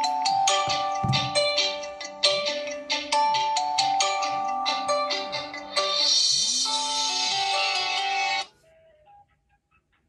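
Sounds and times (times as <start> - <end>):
melodic phone ringtone: 0.0 - 8.5.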